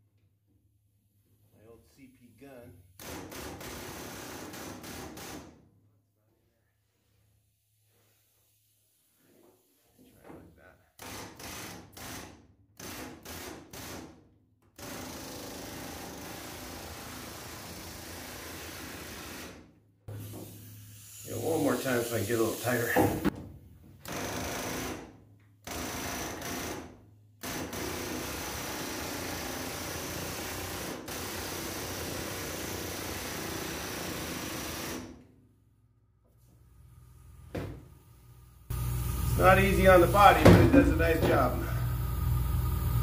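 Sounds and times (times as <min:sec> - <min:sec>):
pneumatic air hammer bursts: 0:03.0 - 0:05.6, 0:11.0 - 0:14.2, 0:14.8 - 0:23.3, 0:24.0 - 0:35.2.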